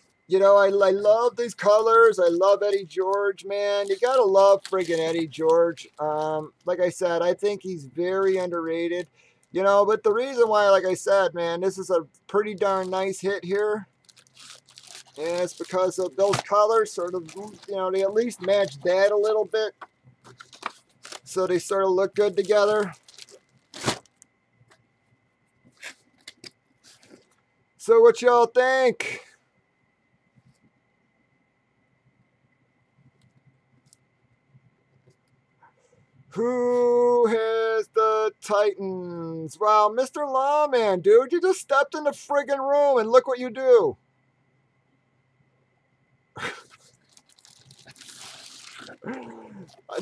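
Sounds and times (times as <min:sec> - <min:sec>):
plastic wrapping crinkling: 0:02.6 - 0:06.8, 0:12.4 - 0:24.8, 0:25.7 - 0:27.4, 0:46.6 - 0:50.0.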